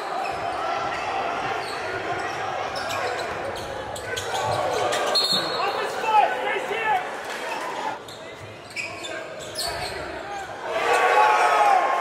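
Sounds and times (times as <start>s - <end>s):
voices in large hall: 0.0s - 12.0s.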